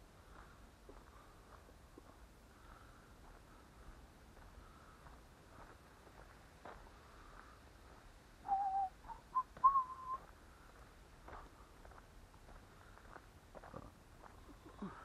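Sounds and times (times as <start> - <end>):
person whistling: 8.4 - 10.3.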